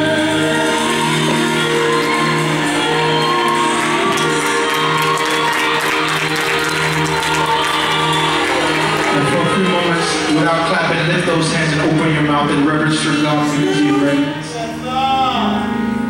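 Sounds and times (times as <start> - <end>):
recorded gospel music: 0.0 - 16.0
people shouting and whooping: 2.1 - 10.8.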